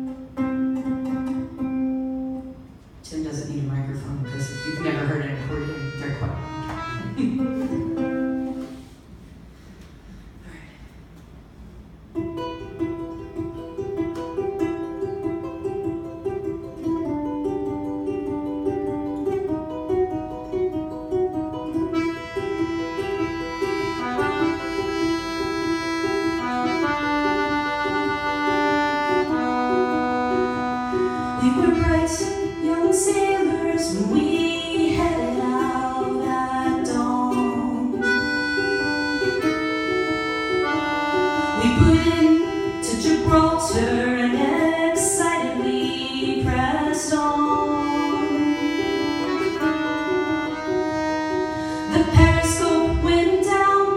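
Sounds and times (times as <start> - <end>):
ukulele picking: 0.0 - 9.2, 11.1 - 53.9
piano accordion chords and melody: 4.3 - 7.7, 21.9 - 33.6, 38.0 - 43.6, 47.6 - 52.6.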